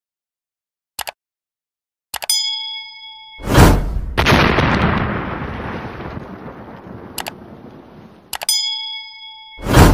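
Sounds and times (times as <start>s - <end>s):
bright bell ding: 2.3s - 3.5s, 8.5s - 9.7s
explosion sound effect: 3.4s - 7.2s, 9.6s - 9.9s.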